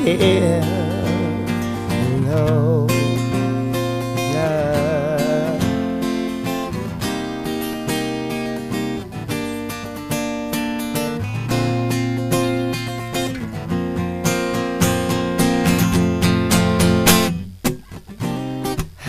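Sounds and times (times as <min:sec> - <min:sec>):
acoustic guitar strumming: 0:00.0 - 0:19.0.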